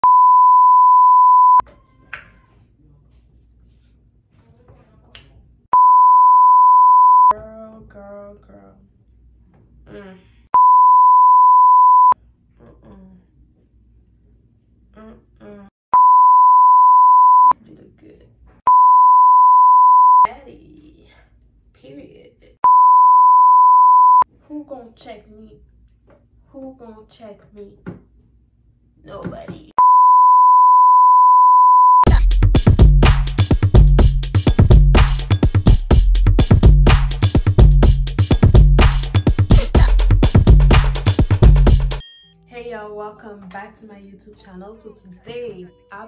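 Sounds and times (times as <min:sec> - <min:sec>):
steady pure test tone beep: 0:00.0 - 0:01.6, 0:05.8 - 0:07.3, 0:10.6 - 0:12.2, 0:16.0 - 0:17.5, 0:18.7 - 0:20.3, 0:22.6 - 0:24.2, 0:29.8 - 0:32.1.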